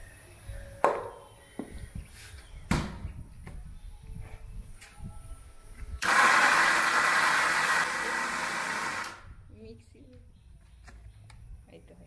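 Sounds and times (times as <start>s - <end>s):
mixer grinder running: 6.0s - 9.2s.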